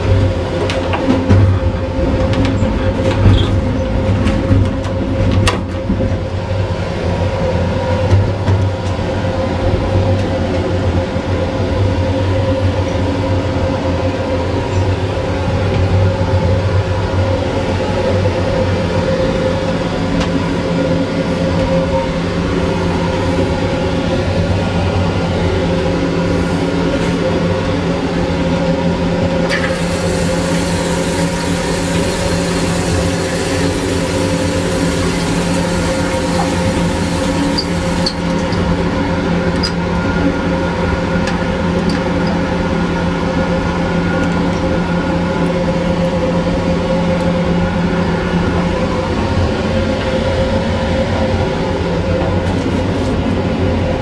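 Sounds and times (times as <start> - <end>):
train car rumbling: 0.0 - 54.0.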